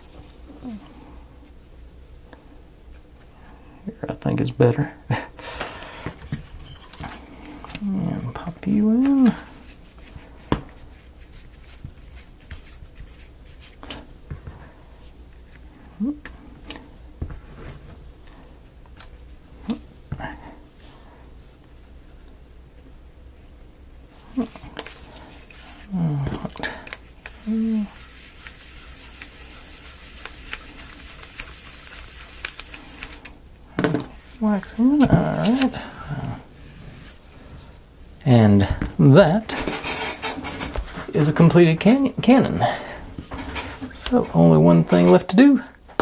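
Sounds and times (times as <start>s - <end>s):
person humming: 0.5s - 1.0s, 7.8s - 9.5s, 15.9s - 16.3s, 25.8s - 26.8s, 27.4s - 28.0s.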